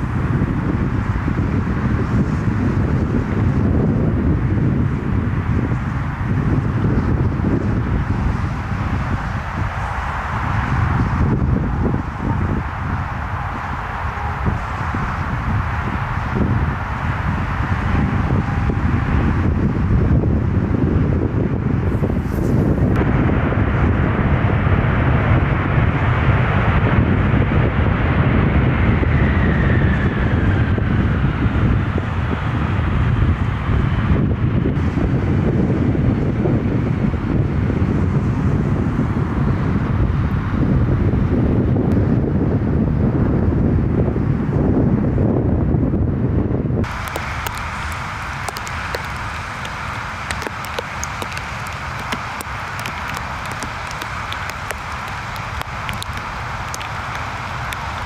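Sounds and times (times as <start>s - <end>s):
rain: 0.0s - 45.8s, 46.8s - 58.0s
jet engine whine: 0.0s - 58.0s
jet engines rumbling: 0.0s - 58.0s
wind on microphone: 0.0s - 58.0s.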